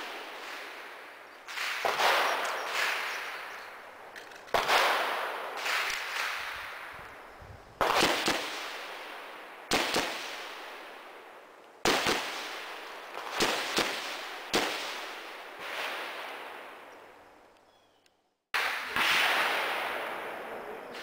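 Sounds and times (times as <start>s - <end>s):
echoing gunshots: 0.0s - 7.2s, 7.8s - 17.0s, 18.6s - 21.0s.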